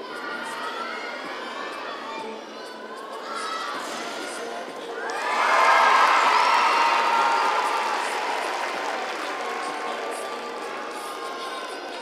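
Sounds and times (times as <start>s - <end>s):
voices shouting: 5.0s - 10.9s
crowd cheering and applauding: 5.0s - 12.0s.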